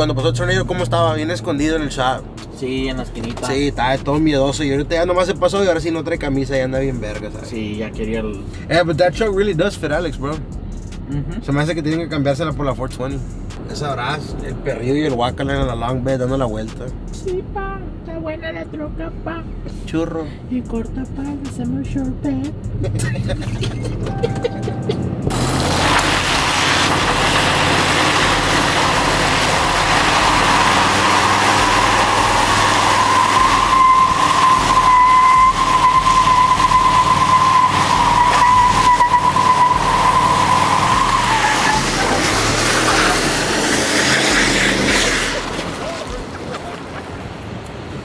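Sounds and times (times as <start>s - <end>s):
truck engine running hard: 22.7s - 48.0s
tyres spinning and screeching: 25.3s - 47.5s.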